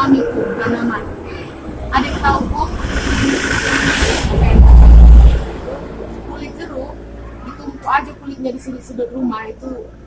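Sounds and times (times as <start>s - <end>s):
low rumble on microphone: 0.0s - 8.0s.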